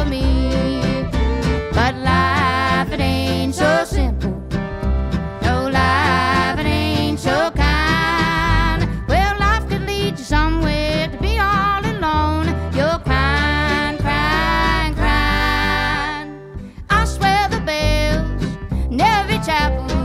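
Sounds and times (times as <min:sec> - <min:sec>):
woman singing: 0:00.0 - 0:04.5, 0:05.4 - 0:20.0
acoustic guitar: 0:00.0 - 0:20.0
fiddle: 0:00.0 - 0:20.0
upright bass: 0:00.0 - 0:20.0.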